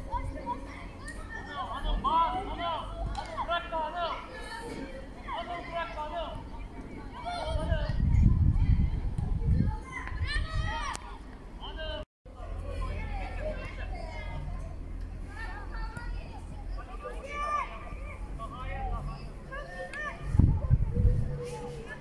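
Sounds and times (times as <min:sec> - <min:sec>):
children shouting: 0:09.8 - 0:11.2, 0:19.5 - 0:20.4.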